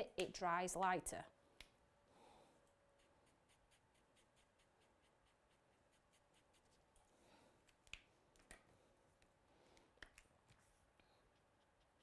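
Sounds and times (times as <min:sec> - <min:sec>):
marker nib scratching on card: 0:03.0 - 0:06.8.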